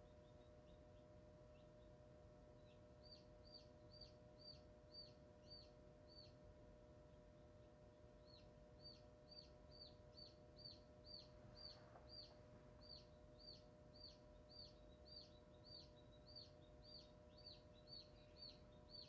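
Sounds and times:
chick peeping: 8.2s - 19.0s.

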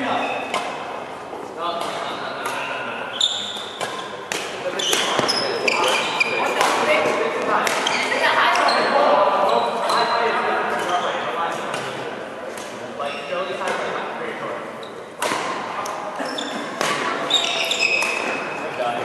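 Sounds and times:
voices chattering: 0.0s - 19.0s
sneakers squeaking on court: 1.9s - 11.3s, 13.0s - 13.7s, 16.2s - 18.7s
rackets striking shuttlecock: 3.4s - 8.6s, 15.2s - 16.0s, 16.8s - 18.5s.

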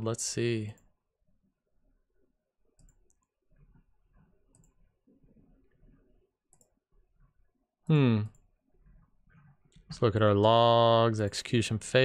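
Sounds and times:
faint computer clicks: 2.8s - 3.4s, 4.1s - 4.9s.

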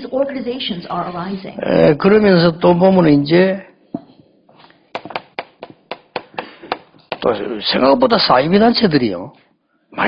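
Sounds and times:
chalk tapping on chalkboard: 4.9s - 7.3s.

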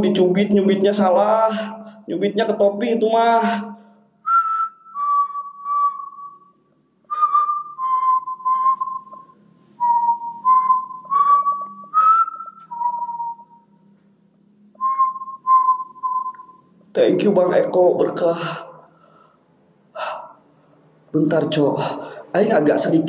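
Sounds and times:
man whistling a slow tune: 4.2s - 13.9s, 14.8s - 16.7s.

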